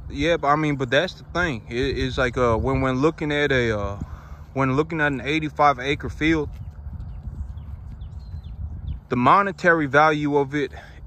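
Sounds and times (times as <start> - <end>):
low rumble: 0.0 - 10.1
cattle chewing grass: 5.0 - 8.8.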